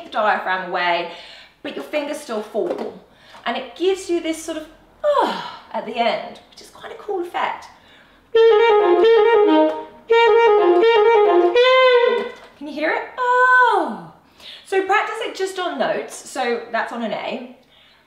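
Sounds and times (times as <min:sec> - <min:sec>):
alto saxophone playing: 0:08.3 - 0:12.5.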